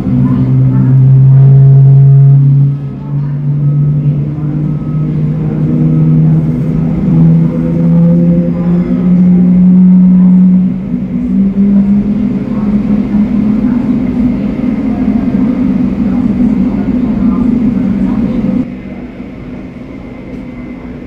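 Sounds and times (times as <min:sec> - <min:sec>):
engine low hum: 0:00.0 - 0:21.0.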